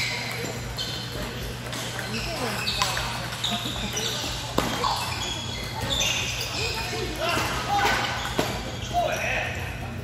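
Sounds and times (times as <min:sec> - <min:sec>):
chatter of a busy hall: 0:00.0 - 0:10.0.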